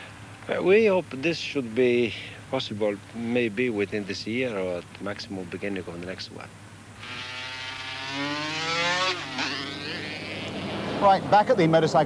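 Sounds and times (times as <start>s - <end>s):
motorcycle engine revving: 7.0s - 11.4s.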